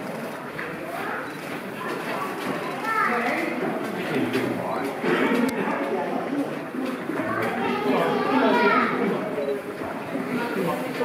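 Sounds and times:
crowd chatter: 0:00.0 - 0:11.0
child's high voice: 0:02.1 - 0:03.4, 0:07.2 - 0:09.0.

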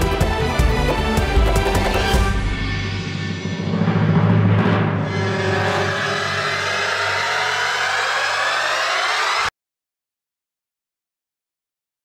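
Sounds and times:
dramatic background score: 0:00.0 - 0:09.5.

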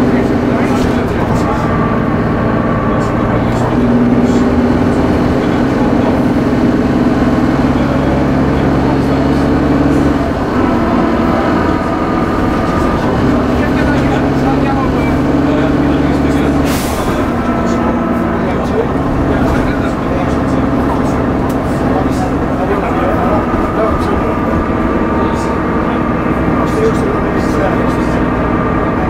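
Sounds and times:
bus diesel engine: 0:00.0 - 0:29.0.

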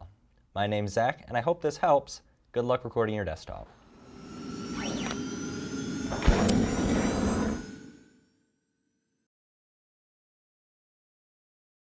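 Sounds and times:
sharp hit: 0:03.7 - 0:08.3
rushing whoosh: 0:03.8 - 0:08.2.

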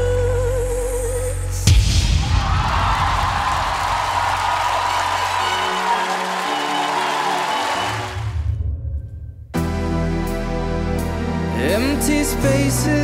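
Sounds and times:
backing music: 0:01.5 - 0:13.0
audience applause: 0:02.4 - 0:08.5.

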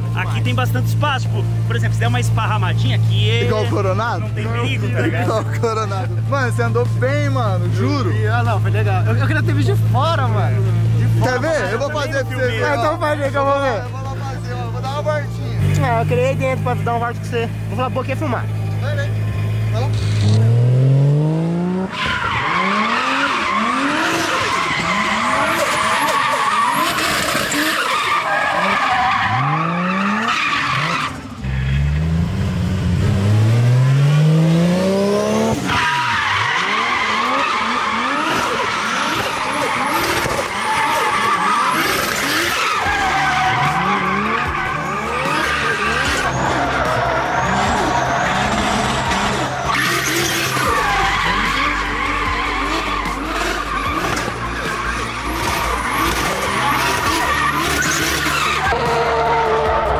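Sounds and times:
car engine revving: 0:00.0 - 0:59.9
tyre squeal: 0:21.9 - 0:31.8, 0:35.6 - 0:59.9.

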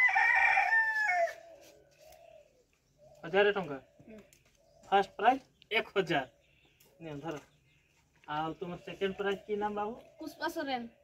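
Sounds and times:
rooster crowing: 0:00.0 - 0:01.7.

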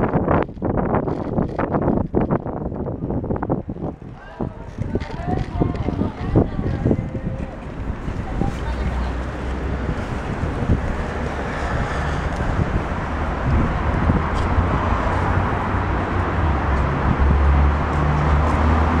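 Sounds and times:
deep low rumble: 0:00.0 - 0:19.0
street traffic: 0:00.0 - 0:19.0
wind buffeting microphone: 0:00.0 - 0:19.0.

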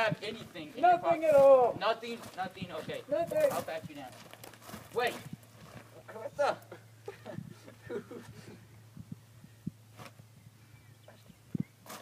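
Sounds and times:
steady low hum: 0:00.0 - 0:12.0
faint low thumps: 0:06.8 - 0:11.8.

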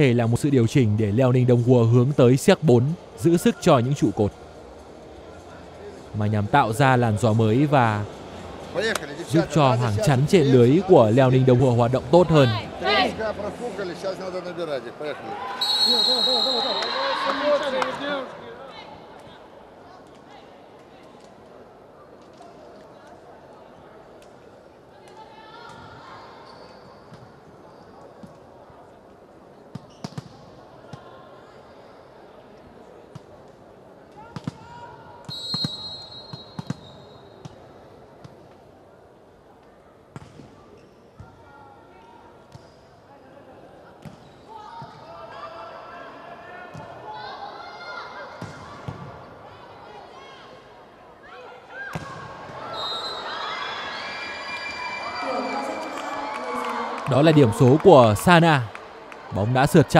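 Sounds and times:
short whistle: 0:15.6 - 0:17.0, 0:35.3 - 0:37.4, 0:52.7 - 0:53.3
players calling out: 0:55.2 - 0:59.9.

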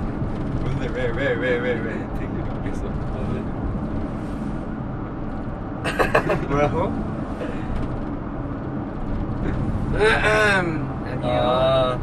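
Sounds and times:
vehicle cabin road noise: 0:00.0 - 0:12.0
person laughing: 0:05.9 - 0:06.5.

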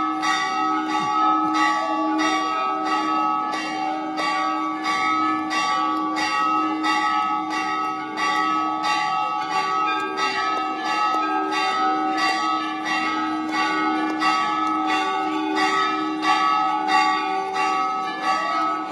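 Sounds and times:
temple bells ringing: 0:00.0 - 0:18.9.

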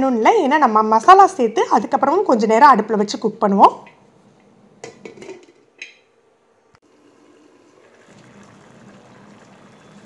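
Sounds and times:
curry bubbling in a pot: 0:06.8 - 0:10.0.

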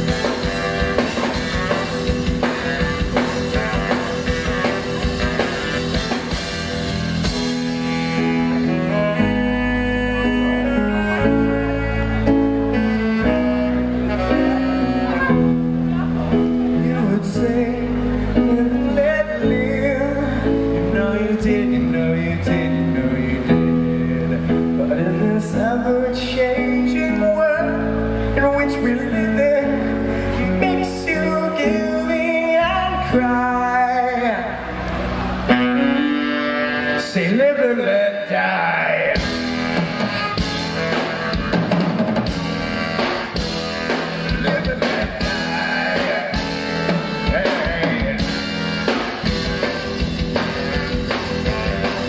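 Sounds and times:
drums striking: 0:00.0 - 0:07.9, 0:39.2 - 0:52.0
live band music: 0:00.0 - 0:52.0.

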